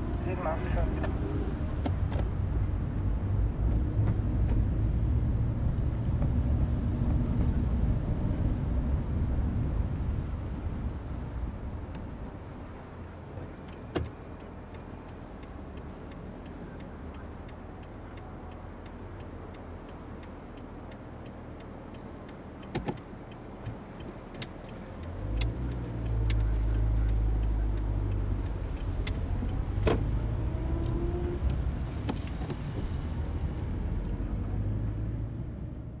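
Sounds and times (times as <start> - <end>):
loud vehicle rumble: 0.0 - 13.4, 14.1 - 36.0
low rumble of cars: 0.0 - 36.0
sharp clicks and knocks: 22.2 - 26.5, 27.1 - 32.9.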